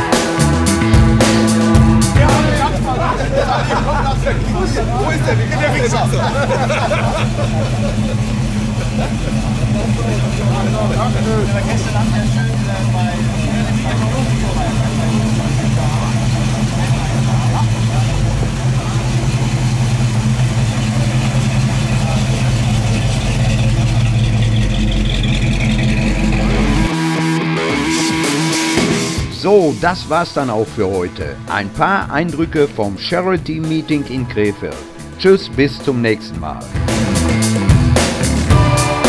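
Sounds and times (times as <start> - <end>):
car engine idling: 0.0 - 39.0
people talking: 2.0 - 24.1, 29.3 - 36.8.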